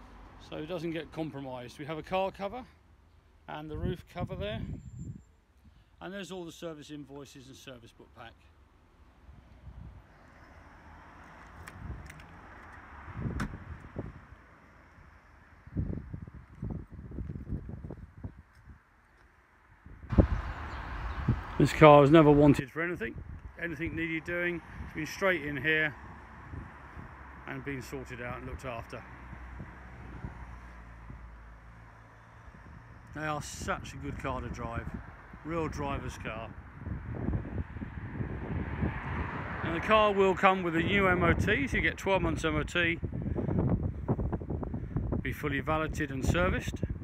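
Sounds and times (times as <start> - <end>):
wind buffeting on microphone: 3.7 - 5.3, 9.3 - 10.2, 11.5 - 14.4, 15.0 - 18.9, 19.8 - 27.7, 28.3 - 31.4, 32.4 - 47.0.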